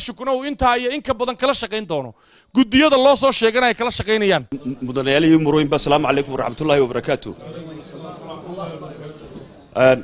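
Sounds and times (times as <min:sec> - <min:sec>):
man speaking into a microphone: 0:00.0 - 0:10.0.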